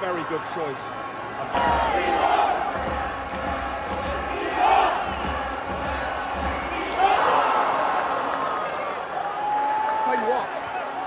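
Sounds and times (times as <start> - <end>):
stadium crowd shouting and cheering: 0.0 - 11.0.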